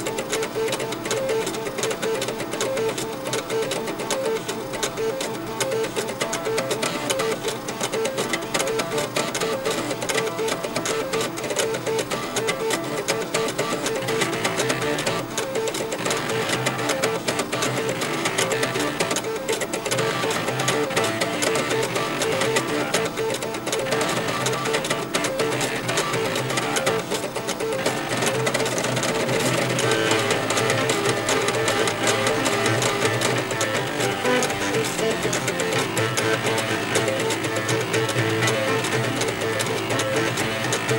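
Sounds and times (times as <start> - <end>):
floppy drive motors playing melody: 0.0 - 40.9.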